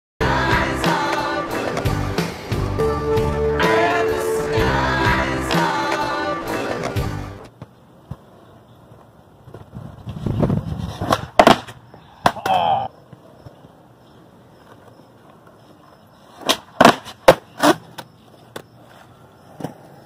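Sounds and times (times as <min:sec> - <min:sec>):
skateboard wheels rolling on concrete: 0:00.2 - 0:20.0
skateboard tail scraping: 0:00.3 - 0:02.8, 0:03.7 - 0:20.0
skateboard clacking on ground: 0:06.8 - 0:20.0.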